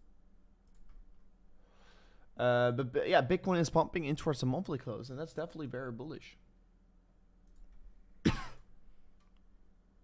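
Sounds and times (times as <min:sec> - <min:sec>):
man clearing his throat: 0:08.2 - 0:08.7.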